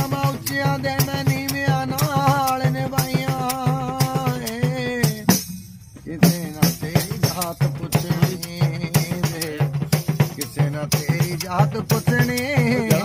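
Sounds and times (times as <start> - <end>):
man singing: 0.0 - 5.4, 6.0 - 13.0
tambourine jingling rhythm: 0.0 - 13.0.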